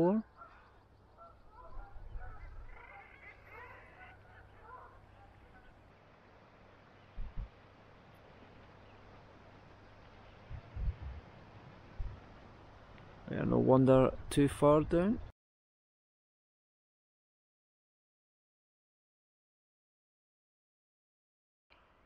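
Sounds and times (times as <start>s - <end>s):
birds chattering: 0.0s - 5.9s
wind and sea hiss: 0.5s - 15.3s.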